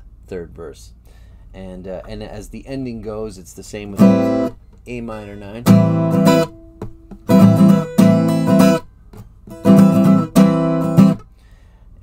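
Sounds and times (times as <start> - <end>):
acoustic guitar strumming: 3.9 - 11.4.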